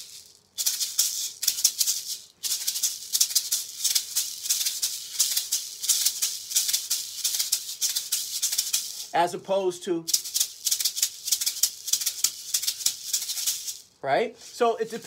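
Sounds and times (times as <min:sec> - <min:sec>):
maracas shaking: 0:00.0 - 0:15.0.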